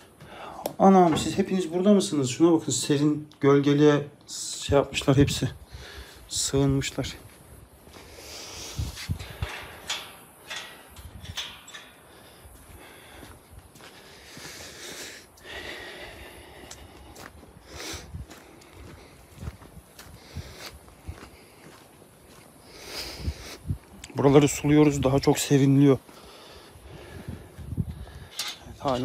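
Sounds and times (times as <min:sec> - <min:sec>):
footsteps on paving and grass: 0:06.8 - 0:09.2, 0:12.2 - 0:28.2.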